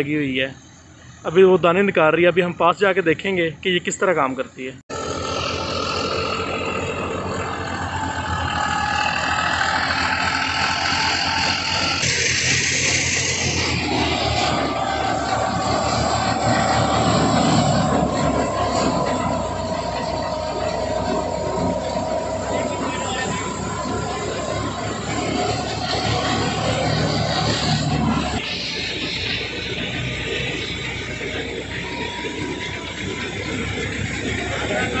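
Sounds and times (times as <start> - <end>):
diesel tractor engine running: 0.0 - 35.0
steady whine: 0.0 - 35.0
thresher drum and fan whirring: 4.9 - 35.0.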